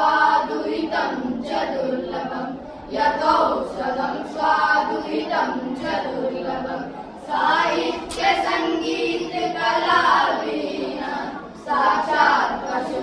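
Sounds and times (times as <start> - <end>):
boys singing unaccompanied: 0.0 - 13.0.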